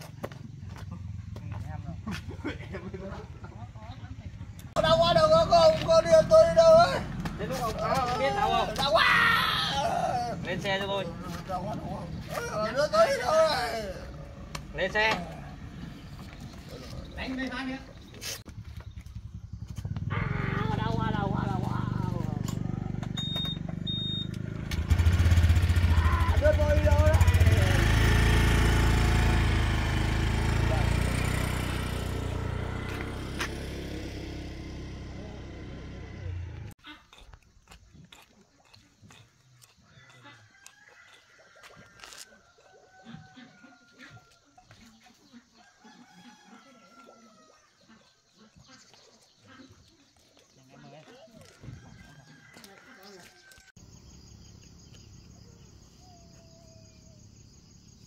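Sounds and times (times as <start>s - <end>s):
motorbike engine: 0.0s - 36.8s
faint bird calls: 54.8s - 57.8s.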